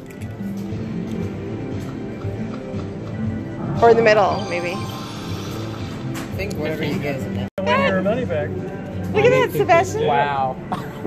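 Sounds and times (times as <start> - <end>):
slot machine music: 3.6 - 6.9.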